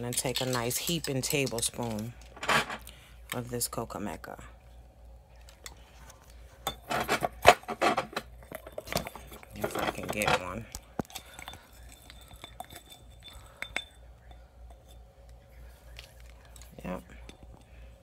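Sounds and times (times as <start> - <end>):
spoon clinking in glass jar: 11.1 - 15.0.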